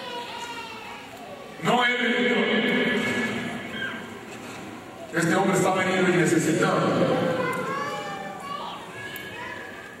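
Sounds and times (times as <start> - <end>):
children calling and chattering: 0.0 - 1.6, 6.8 - 10.0
man speaking: 1.6 - 3.6, 5.1 - 7.3.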